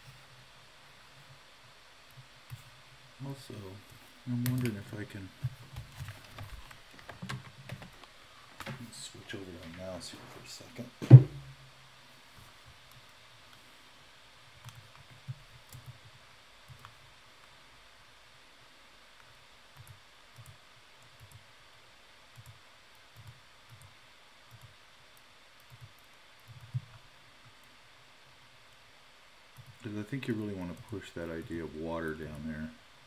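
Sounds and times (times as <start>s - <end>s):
computer mouse clicking: 4.4s - 4.8s, 14.6s - 17.0s, 19.2s - 21.5s, 22.3s - 23.9s, 24.5s - 27.8s, 29.6s - 29.8s, 30.7s - 31.6s
loud knock: 11.0s - 11.5s.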